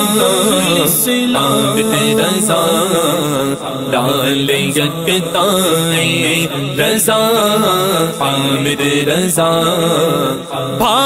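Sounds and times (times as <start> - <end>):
devotional chant singing: 0.0 - 11.0.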